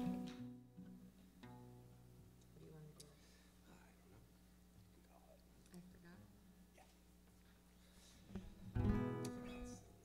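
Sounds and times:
acoustic guitar chord strummed: 0.0 - 2.2, 8.7 - 9.9
faint steady hum: 0.0 - 10.0.

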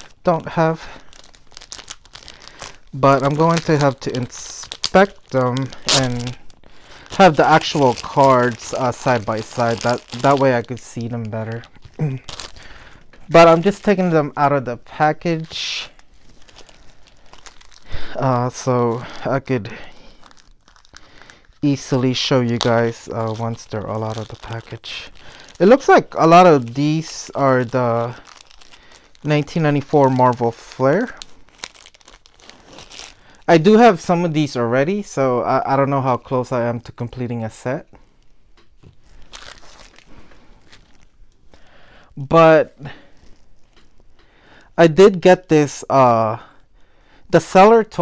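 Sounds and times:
trading cards rustling: 0.0 - 34.0, 38.0 - 41.7
plastic wrapper crinkling: 0.0 - 46.8.

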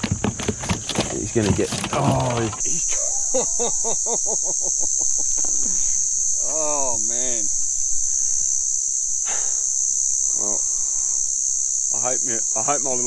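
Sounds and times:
cicadas buzzing: 0.0 - 13.0.

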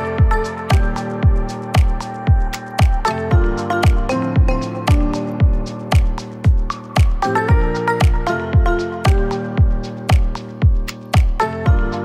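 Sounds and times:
sustained chords and melody: 0.0 - 12.0
deep kick drum beat: 0.1 - 12.0.

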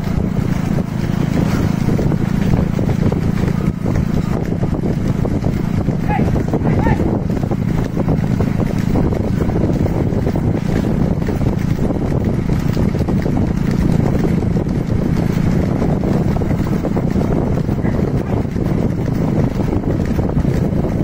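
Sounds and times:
road rumble: 0.0 - 21.0
wind buffeting microphone: 0.0 - 21.0.

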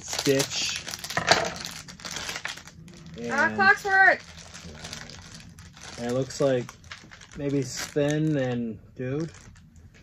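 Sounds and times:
foil wrapper crinkling: 0.0 - 9.7.

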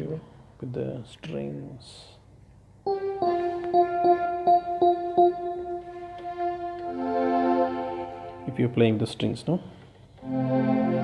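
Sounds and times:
keyboard playing strings voice: 2.9 - 9.4, 10.2 - 11.0.

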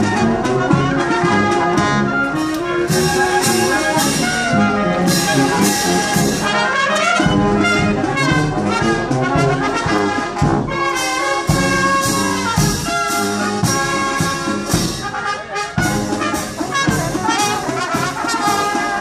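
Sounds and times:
marching band playing a march: 0.0 - 19.0.

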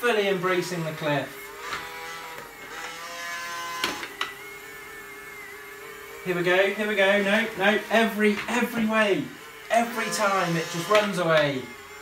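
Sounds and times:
robot vacuum motor whine: 0.3 - 12.0.

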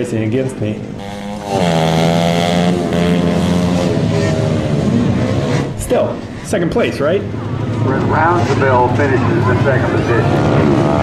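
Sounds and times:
dirt bike engine running: 0.5 - 11.0.

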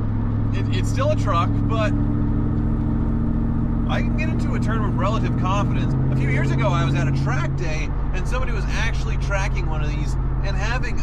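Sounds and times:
truck engine running while driving: 0.0 - 11.0.

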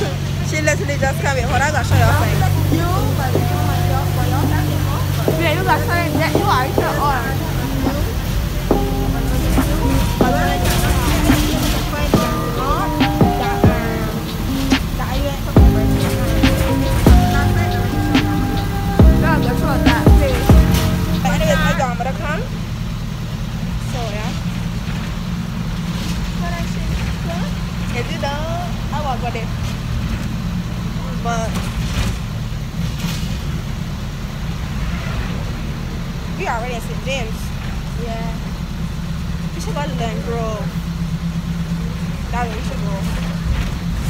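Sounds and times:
people's voices: 0.0 - 32.8, 35.2 - 44.0
bus engine and road rumble: 0.0 - 44.0.

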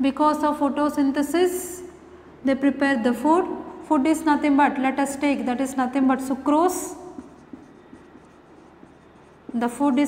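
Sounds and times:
marker pen writing on whiteboard: 4.9 - 10.0.

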